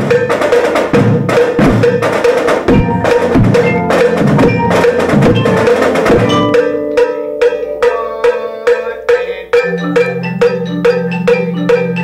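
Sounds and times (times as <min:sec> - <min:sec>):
vibraphone played with mallets: 0:02.7 - 0:12.0.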